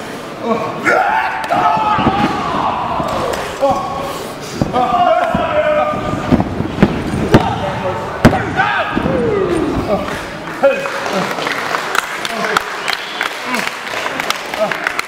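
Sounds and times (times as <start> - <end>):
spectators shouting: 0.8 - 6.3, 7.3 - 10.1
loud cracks: 1.3 - 3.9.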